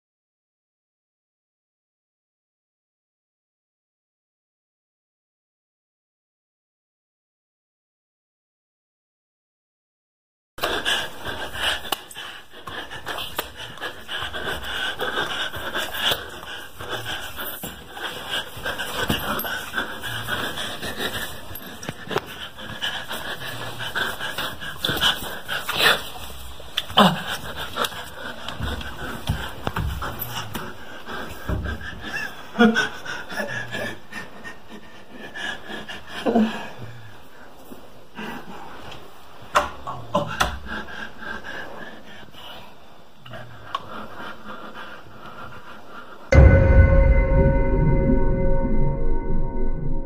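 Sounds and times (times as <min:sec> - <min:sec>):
heavy panting breaths: 0:10.6 - 0:39.2, 0:40.2 - 0:46.3.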